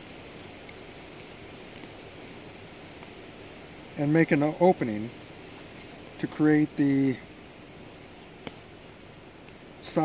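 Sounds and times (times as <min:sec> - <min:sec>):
low outdoor background hiss: 0:00.0 - 0:10.0.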